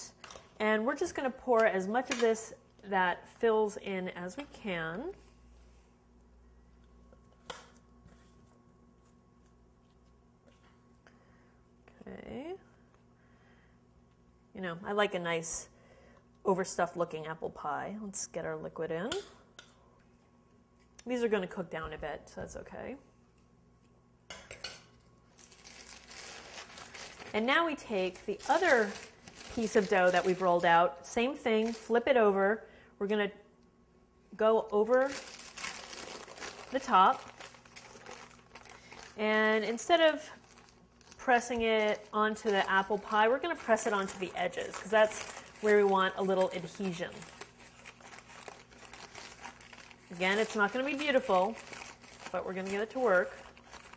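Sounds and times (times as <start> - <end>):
parchment paper rustling: 25.4 - 30.7, 34.8 - 39.2, 40.0 - 53.9.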